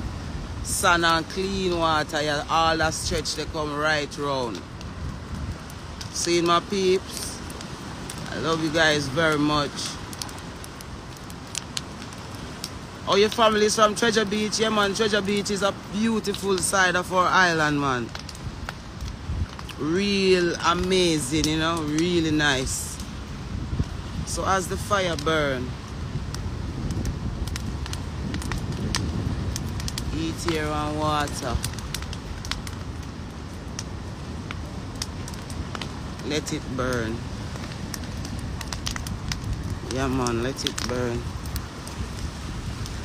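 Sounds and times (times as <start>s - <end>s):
fire crackling: 0.0s - 43.0s
wind rumble on microphone: 0.0s - 43.0s.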